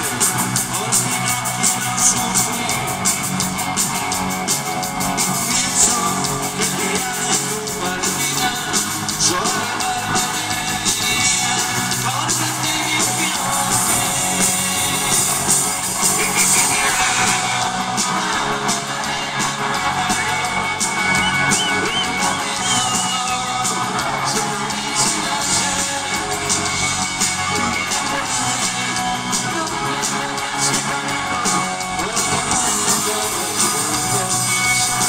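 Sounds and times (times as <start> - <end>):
audience noise: 0.0 - 35.0
drums: 0.0 - 35.0
electric guitars: 0.0 - 35.0
lead singer: 0.0 - 35.0.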